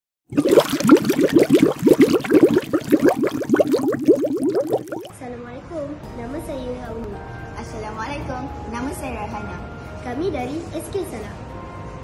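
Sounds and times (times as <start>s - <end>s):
rising bubbling bloops: 0.3s - 5.1s.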